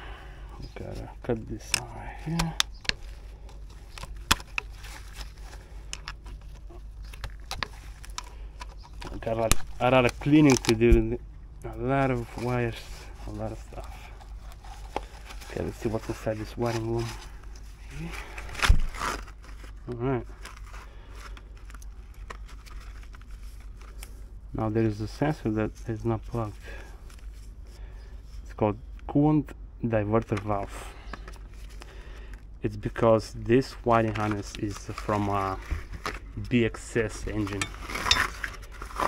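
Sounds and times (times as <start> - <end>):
low steady hum: 0.0 - 39.0
wiring harness scraping and clicking: 0.6 - 24.2, 33.6 - 39.0
plastic connectors clicking: 5.9 - 11.0.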